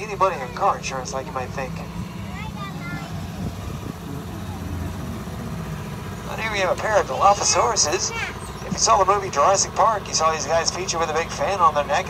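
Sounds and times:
shuttle engine and road rumble: 0:00.0 - 0:12.0.

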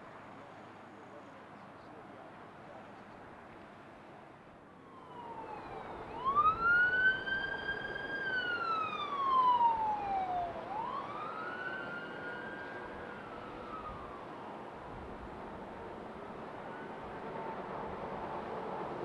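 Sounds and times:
siren wailing: 0:04.8 - 0:14.4.

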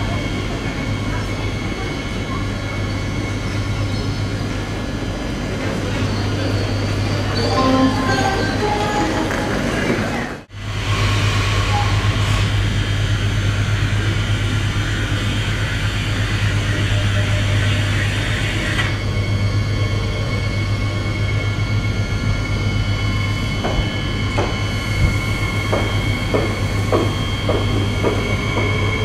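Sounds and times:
electric train hum and rumble: 0:00.0 - 0:29.0
thin high whine of train: 0:00.0 - 0:29.0.

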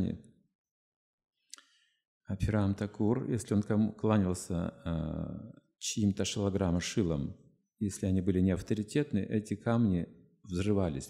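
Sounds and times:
faint mouth click: 0:01.5 - 0:01.8.

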